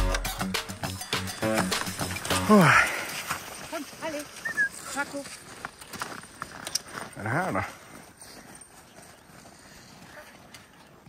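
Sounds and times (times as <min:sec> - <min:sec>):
dogs trotting on packed snow: 0:02.6 - 0:11.0.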